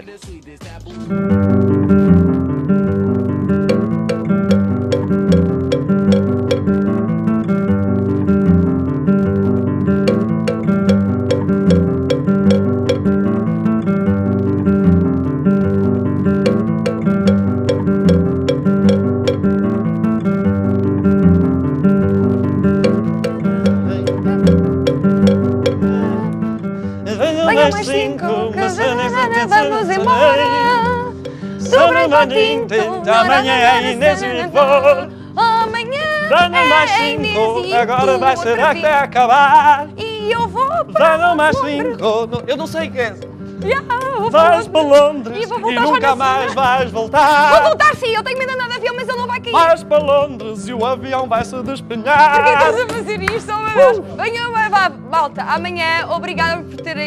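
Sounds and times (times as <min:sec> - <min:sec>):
acoustic guitar strumming: 0:00.2 - 0:57.0
cowbell knocks: 0:03.6 - 0:06.9, 0:10.0 - 0:13.3, 0:16.4 - 0:19.7, 0:22.8 - 0:26.2, 0:31.1 - 0:32.5, 0:56.7 - 0:57.0
voices: 0:27.1 - 0:57.0.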